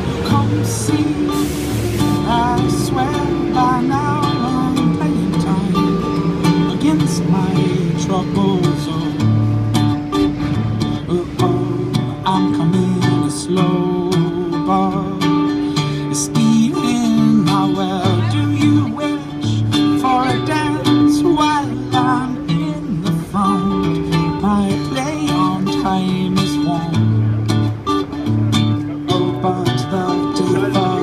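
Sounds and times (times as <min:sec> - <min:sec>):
man singing: 0:00.0 - 0:09.7, 0:10.8 - 0:27.3, 0:28.8 - 0:31.0
acoustic guitar strumming: 0:00.0 - 0:31.0.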